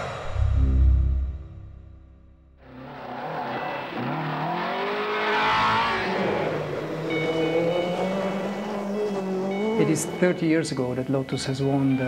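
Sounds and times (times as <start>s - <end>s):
car engine revving: 2.6s - 11.3s
road and tyre noise: 2.6s - 12.0s.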